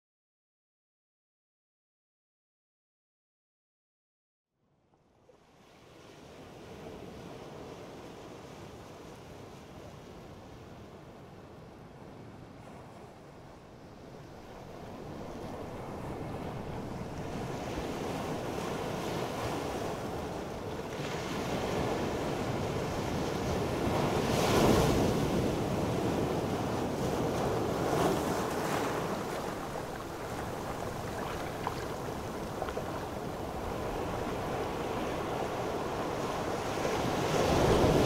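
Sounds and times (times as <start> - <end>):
ocean waves breaking: 14.4 - 38.0.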